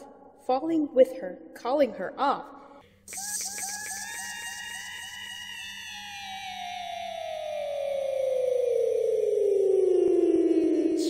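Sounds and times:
pulsing whistle tone gliding down: 0:03.1 - 0:11.0.

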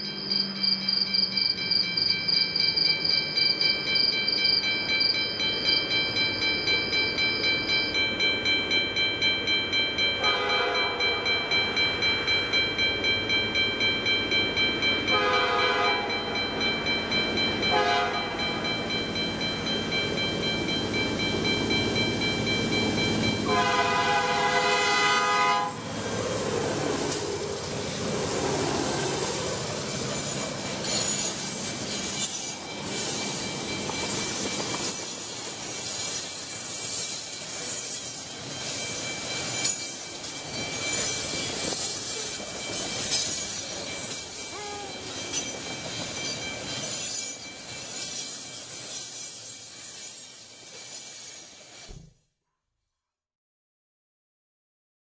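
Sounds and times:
crossing bell ringing: 0:00.0 - 0:51.1
rumble and clatter of train cars: 0:00.0 - 0:52.1
train horn blast: 0:10.2 - 0:11.2, 0:15.1 - 0:16.1, 0:17.7 - 0:18.3, 0:23.5 - 0:25.8.

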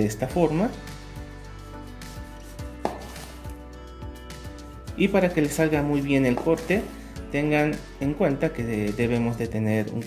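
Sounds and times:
knife slicing an orange: 0:02.1 - 0:03.6
blade knocking cutting board: 0:02.8 - 0:03.3.

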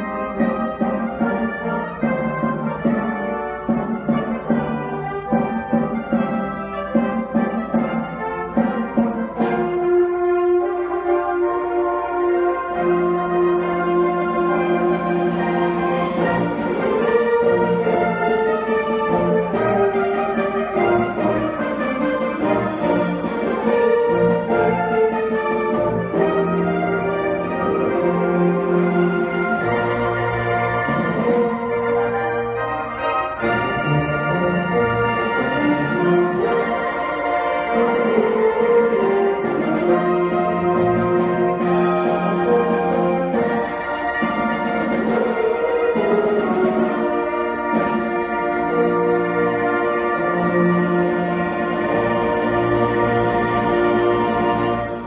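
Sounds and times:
percussion strokes: 0:00.0 - 0:10.4
brass sustained chords: 0:00.0 - 0:55.0
concert band playing: 0:00.0 - 0:55.0.

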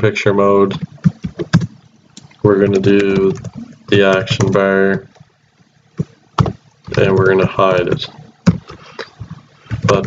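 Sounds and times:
computer keyboard keys typing: 0:00.7 - 0:05.2, 0:06.0 - 0:10.0.

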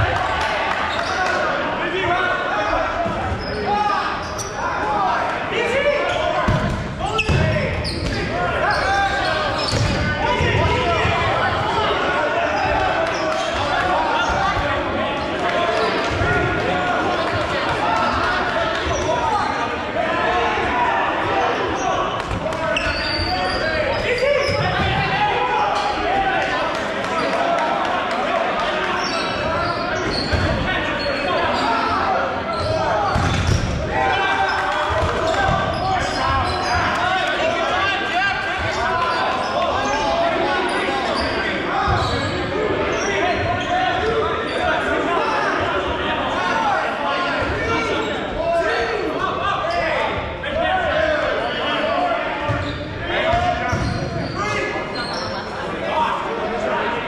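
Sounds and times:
players shouting and chattering: 0:00.0 - 0:57.0.

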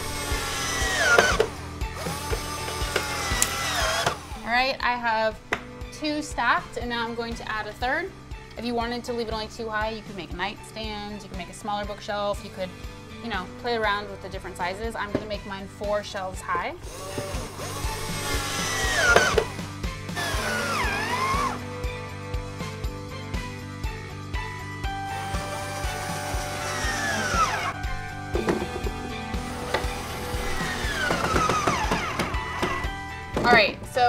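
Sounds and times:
cordless drill whirring: 0:00.0 - 0:04.4, 0:16.8 - 0:21.7, 0:25.1 - 0:33.2
background music with beat: 0:16.8 - 0:34.0.

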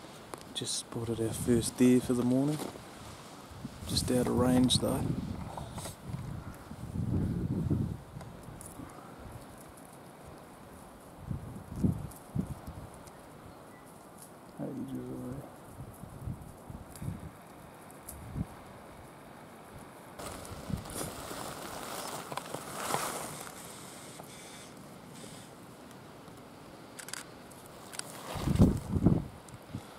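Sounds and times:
wind gusting on microphone: 0:00.9 - 0:09.6, 0:11.1 - 0:13.6, 0:15.2 - 0:17.5, 0:18.1 - 0:19.0, 0:19.8 - 0:23.6, 0:28.1 - 0:29.9.

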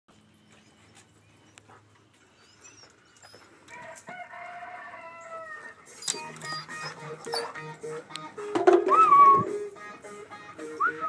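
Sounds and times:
rooster crowing: 0:03.7 - 0:05.8.

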